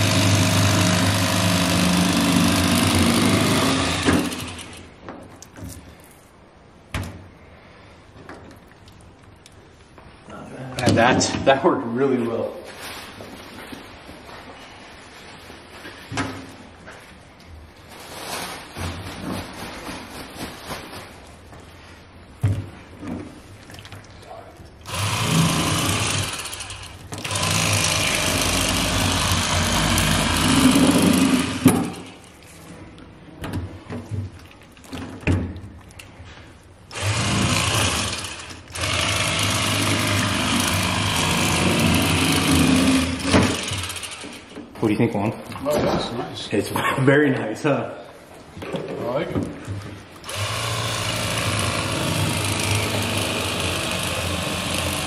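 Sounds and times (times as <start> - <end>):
electric fillet knife buzzing: 0.0 - 4.9, 24.9 - 32.0, 36.9 - 44.4, 50.2 - 55.0.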